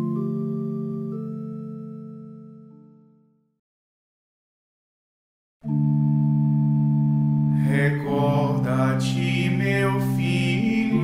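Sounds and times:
sustained musical drone: 5.7 - 11.0
person chanting: 7.5 - 11.0.

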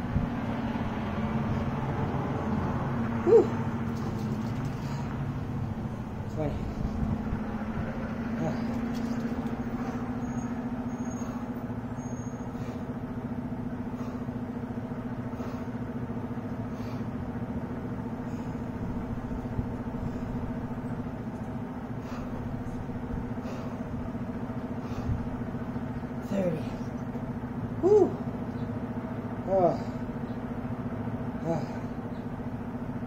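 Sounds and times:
low mechanical hum: 0.0 - 33.0.

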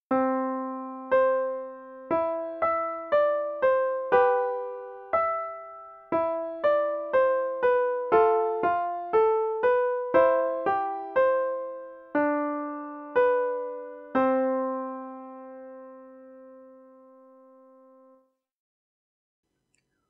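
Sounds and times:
piano playing chords: 0.1 - 18.2.

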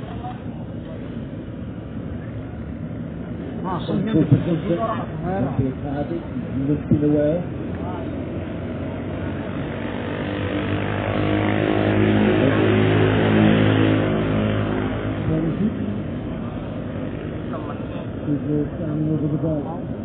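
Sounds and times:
motor engine passing by: 3.1 - 20.0.

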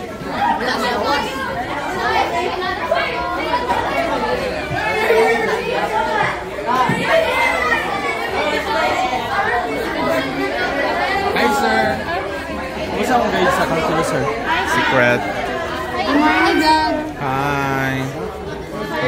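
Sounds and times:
overlapping chatter of voices: 0.0 - 19.0.

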